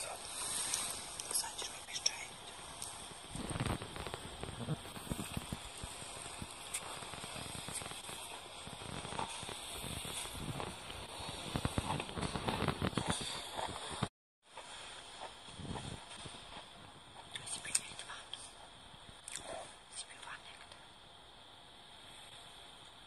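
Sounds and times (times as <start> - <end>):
people whispering: 0.0 - 9.7, 17.2 - 18.6, 19.3 - 20.8
rustling: 0.0 - 18.7.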